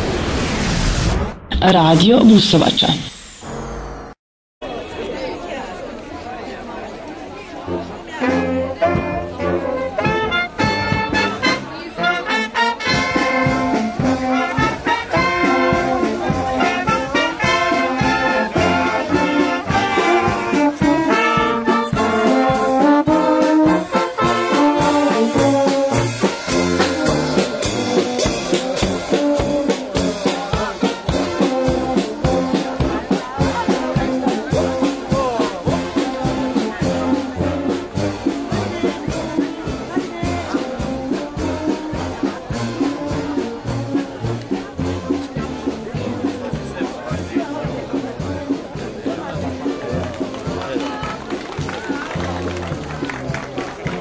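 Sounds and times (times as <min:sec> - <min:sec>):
crowd chatter: 0:04.6 - 0:54.0
brass band playing: 0:07.5 - 0:54.0.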